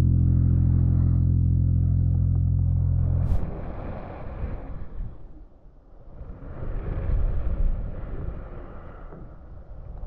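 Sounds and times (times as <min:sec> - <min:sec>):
low uneven rushing noise: 0:00.0 - 0:05.6.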